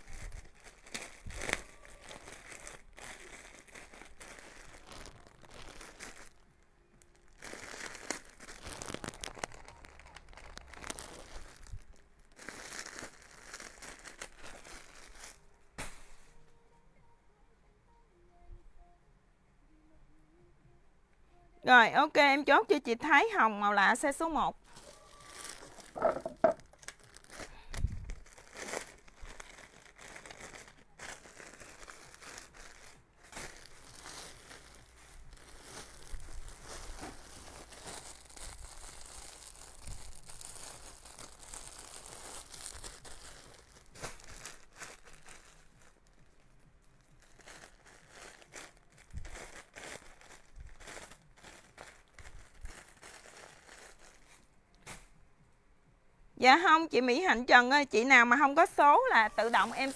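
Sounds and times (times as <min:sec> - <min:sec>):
plastic packaging crinkling: 0:00.0 - 0:16.4, 0:24.2 - 0:55.0, 0:58.5 - 0:59.9.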